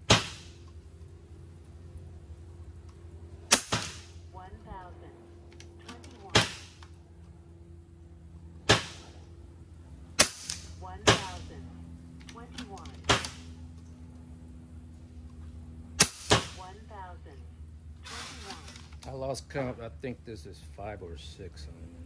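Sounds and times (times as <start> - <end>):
air rifle shots: 0.0 - 0.6, 3.5 - 4.2, 6.2 - 6.8, 8.6 - 9.2, 10.2 - 11.4, 13.0 - 13.6, 16.0 - 16.6.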